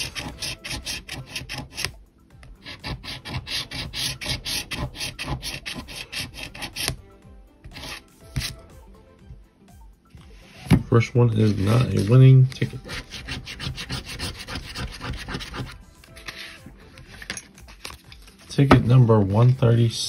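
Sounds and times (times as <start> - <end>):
coin scratching lottery ticket: 0.0 - 1.9, 2.6 - 7.0, 11.4 - 17.3.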